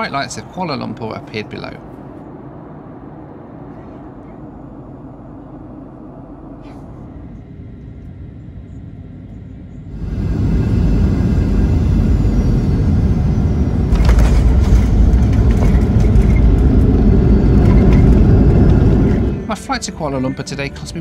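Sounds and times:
airliner cabin hum: 0:00.0 - 0:21.0
deep rumble of engines and wheels: 0:00.0 - 0:21.0
knocks and rattles: 0:13.9 - 0:19.4.

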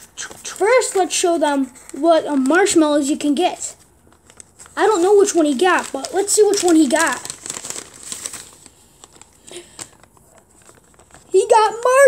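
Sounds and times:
paper rustling and crackling: 0:00.0 - 0:12.0.

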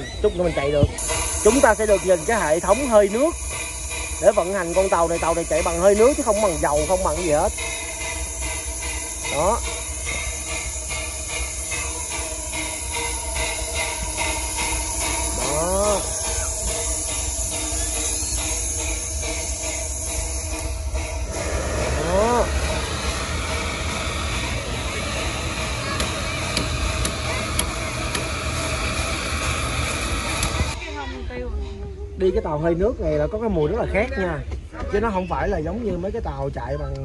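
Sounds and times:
steam hissing: 0:00.0 - 0:33.5.

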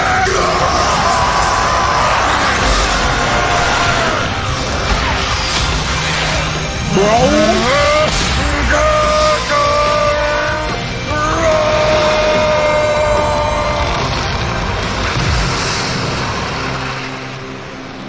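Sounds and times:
battle soundtrack music: 0:00.0 - 0:18.0.

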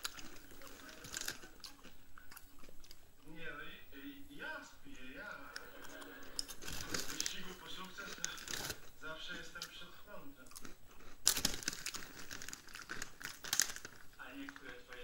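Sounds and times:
crinkling and rustling: 0:00.0 - 0:03.0, 0:06.4 - 0:09.9, 0:10.6 - 0:15.0
television dialogue: 0:00.0 - 0:15.0.

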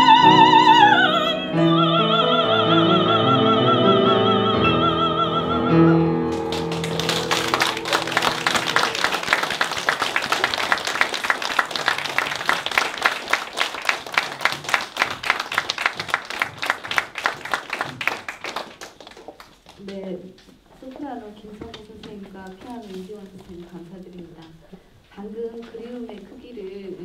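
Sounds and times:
held piano chord: 0:00.0 - 0:10.0
audience applauding: 0:06.3 - 0:19.8.

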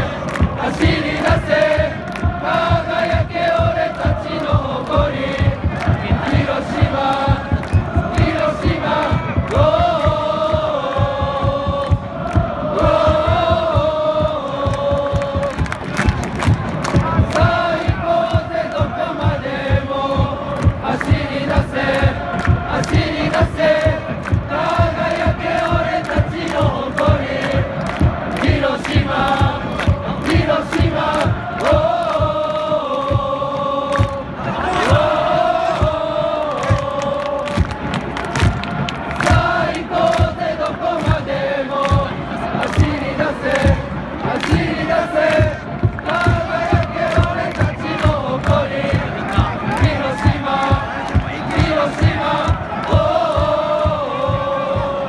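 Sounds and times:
steady drumbeat: 0:00.0 - 0:55.0
supporters chanting in unison: 0:00.0 - 0:55.0.

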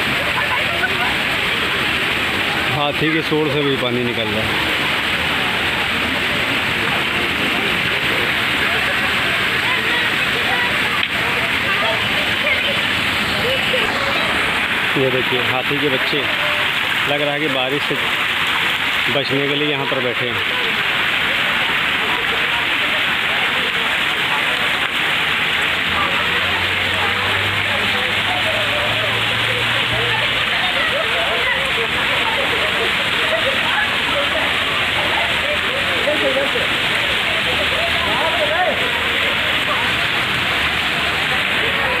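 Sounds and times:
fountain water splashing into pool: 0:00.0 - 0:42.0.

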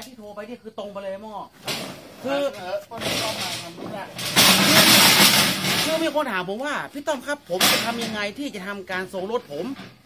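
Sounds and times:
metal ramp scraping: 0:01.6 - 0:06.3, 0:07.5 - 0:08.4.

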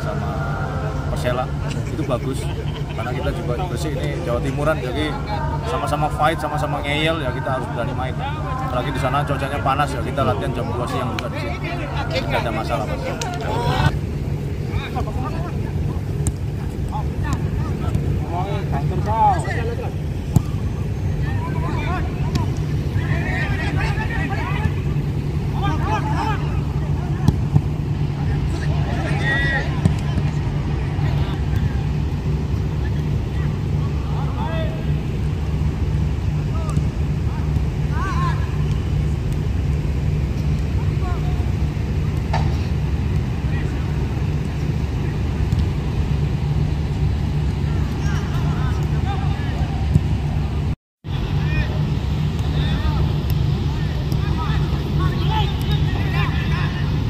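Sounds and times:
distant shouts and calls: 0:00.0 - 0:42.0, 0:46.1 - 0:57.0
steady low rumble: 0:00.0 - 0:57.0
football being kicked: 0:16.1 - 0:18.3, 0:20.2 - 0:20.7, 0:27.1 - 0:27.8, 0:29.6 - 0:30.4.

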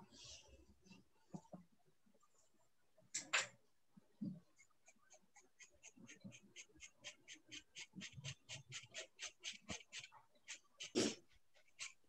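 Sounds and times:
pen nib scratching on paper: 0:04.6 - 0:12.0.

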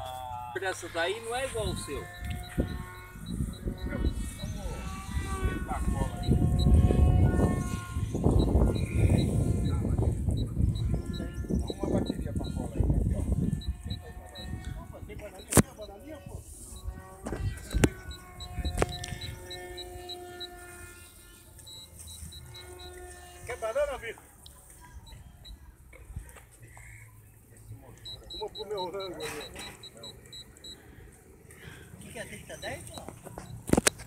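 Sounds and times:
model airplane motor humming: 0:00.0 - 0:26.6, 0:27.3 - 0:34.0
wind rumble on microphone: 0:01.4 - 0:15.4, 0:16.2 - 0:20.4
sharp clicks: 0:01.8 - 0:04.4, 0:15.4 - 0:15.7, 0:16.7 - 0:20.6, 0:27.9 - 0:30.8, 0:32.9 - 0:34.0.

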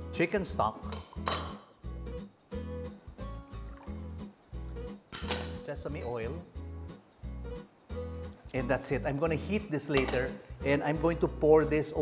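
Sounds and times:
glass bowls clinking: 0:00.8 - 0:01.8, 0:05.1 - 0:06.4, 0:09.9 - 0:10.4.

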